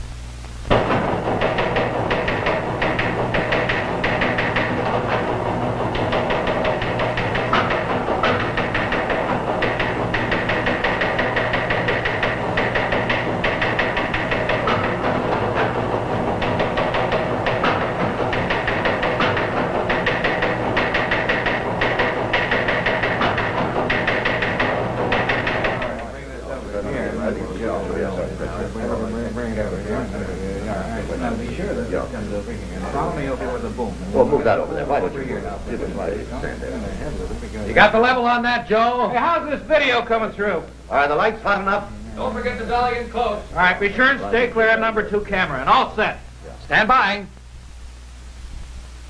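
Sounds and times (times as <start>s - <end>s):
low steady hum: 0.0s - 49.0s
teletype machine clattering: 0.7s - 30.2s.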